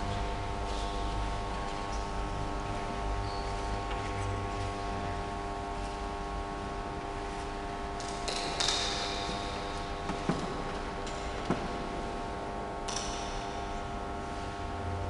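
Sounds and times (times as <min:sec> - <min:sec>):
steady hum of held tones: 0:00.0 - 0:15.0.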